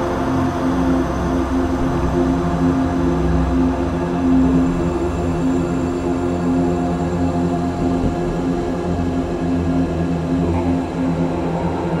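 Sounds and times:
dark ambient drone: 0:00.0 - 0:12.0
pulsing rumble: 0:01.0 - 0:12.0.

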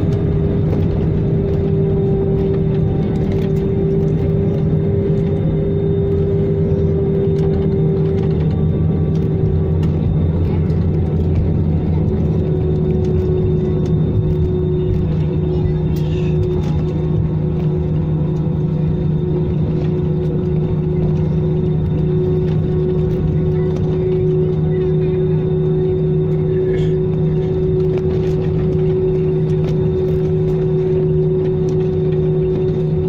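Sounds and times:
jet engine rumble: 0:00.0 - 0:33.0.

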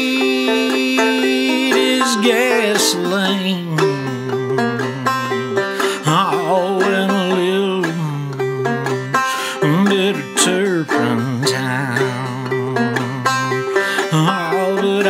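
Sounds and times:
clawhammer banjo playing: 0:00.0 - 0:15.0
man singing long wavering notes: 0:00.0 - 0:15.0.

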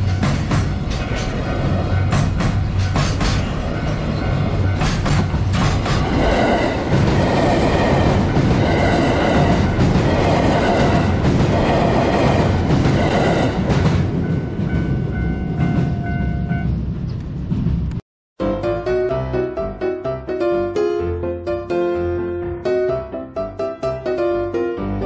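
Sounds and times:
trains rolling on rails: 0:00.0 - 0:18.0.

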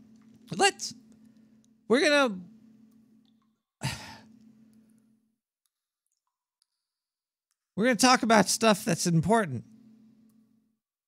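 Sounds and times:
breathy sigh: 0:03.8 - 0:04.3.

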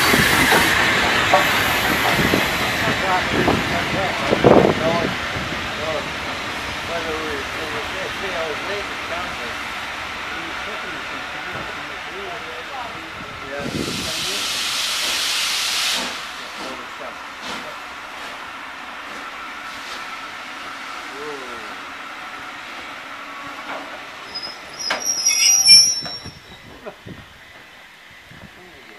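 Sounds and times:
steam hiss: 0:00.0 - 0:12.8, 0:13.4 - 0:21.8
train wheels on rail: 0:00.0 - 0:28.9
train brake squeal: 0:24.2 - 0:26.8.

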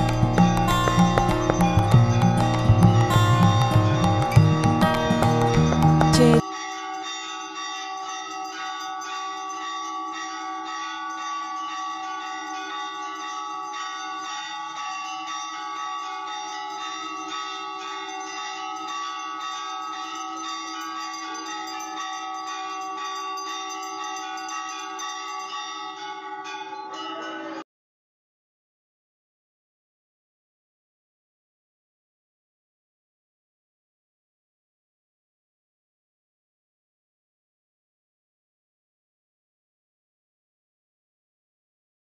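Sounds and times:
handbell ringing: 0:00.0 - 0:27.6.

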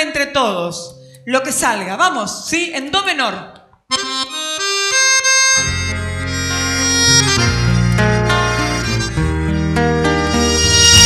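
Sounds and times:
piano accordion chords: 0:03.9 - 0:11.0
acoustic guitars: 0:05.4 - 0:11.0
deep bass notes: 0:05.4 - 0:11.0.

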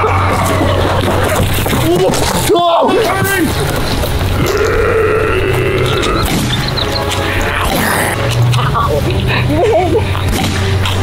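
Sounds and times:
person groaning: 0:04.4 - 0:06.2, 0:07.7 - 0:08.2.

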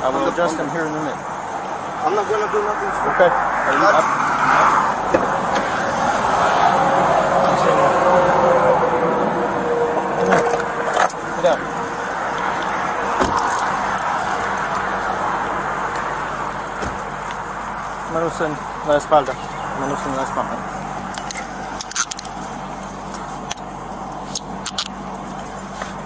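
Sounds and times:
highway traffic passing: 0:00.0 - 0:26.0.

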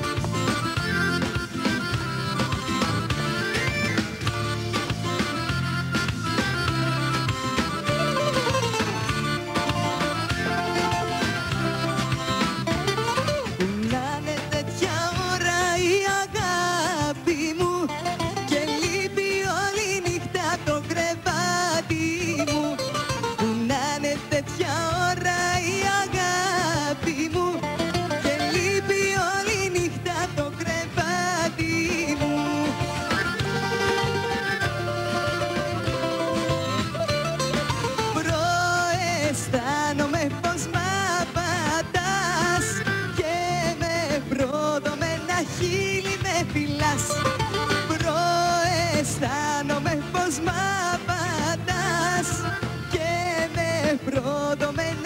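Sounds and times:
bouzouki lead: 0:00.0 - 0:55.0
drums keeping a steady beat: 0:00.0 - 0:55.0
electric guitar: 0:00.0 - 0:55.0
live band playing popular song: 0:00.0 - 0:55.0
plucked string instrument melody: 0:00.0 - 0:55.0
woman singing: 0:13.2 - 0:36.9, 0:37.9 - 0:55.0.

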